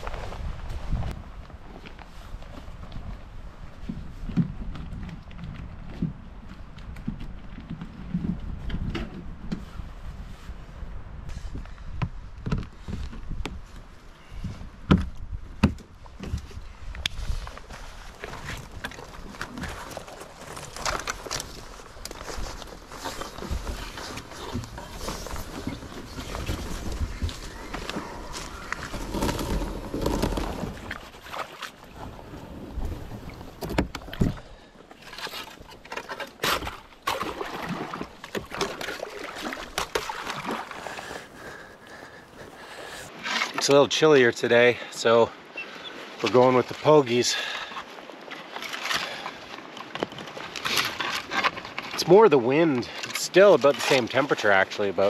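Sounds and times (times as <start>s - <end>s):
knocks and thumps of gear and hull: 3.8s - 9.8s, 11.9s - 16.6s, 18.2s - 32.1s, 32.7s - 37.2s
rustling through dry leaves: 17.4s - 31.2s.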